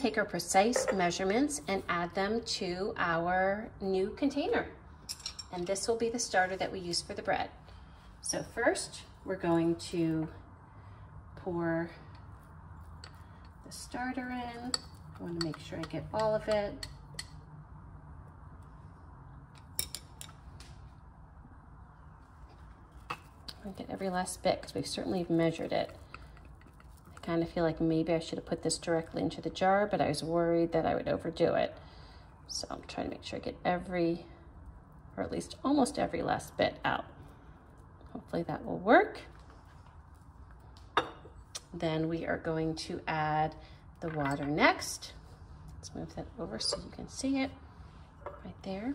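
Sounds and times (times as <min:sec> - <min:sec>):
low steady hum: 0:00.0 - 0:48.9.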